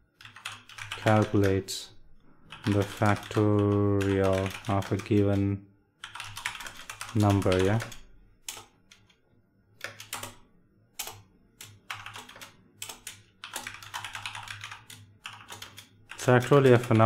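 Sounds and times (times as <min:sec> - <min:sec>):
computer keyboard typing: 0:00.2 - 0:01.7, 0:02.5 - 0:09.2, 0:09.8 - 0:10.4, 0:11.0 - 0:17.0.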